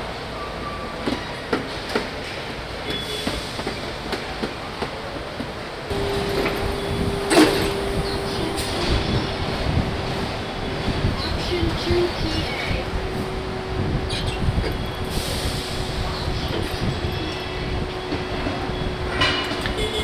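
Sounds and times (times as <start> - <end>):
machinery hum: 5.9 - 20.0.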